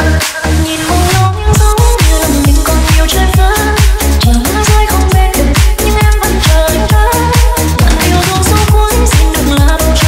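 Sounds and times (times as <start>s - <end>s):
deep house music: 0.0s - 10.0s
pulsing kick and bass beat: 0.0s - 10.0s.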